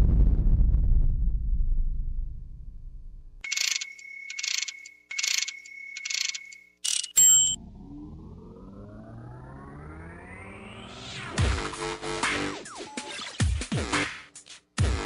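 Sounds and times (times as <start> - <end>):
steady high tone: 3.5 - 11.0
rising synthesizer sweep: 7.6 - 12.8.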